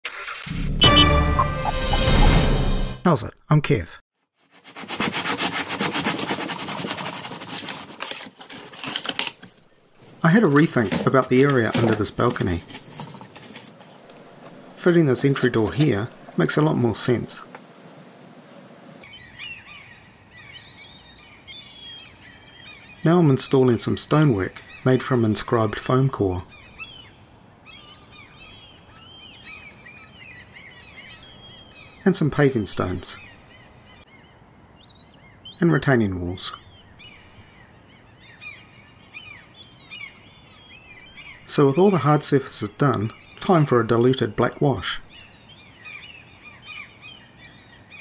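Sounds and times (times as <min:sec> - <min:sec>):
birds chirping: 0:09.6 - 0:48.0.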